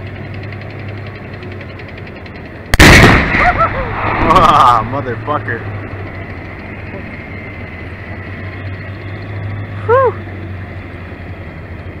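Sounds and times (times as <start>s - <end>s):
tank turbine engine running: 0.0s - 12.0s.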